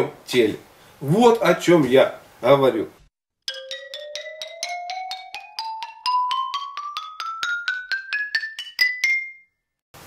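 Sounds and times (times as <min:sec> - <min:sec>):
rising bell-like jingle: 0:03.5 - 0:09.6.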